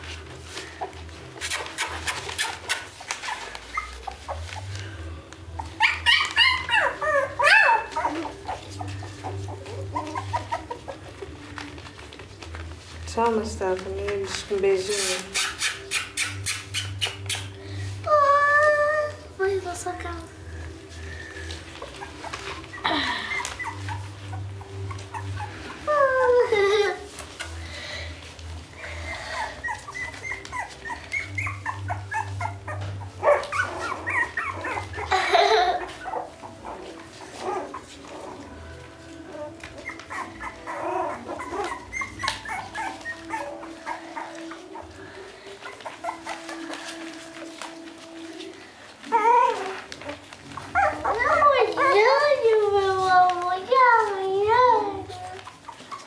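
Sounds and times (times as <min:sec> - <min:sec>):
puppies whining and yelping: 0:00.0 - 0:56.0.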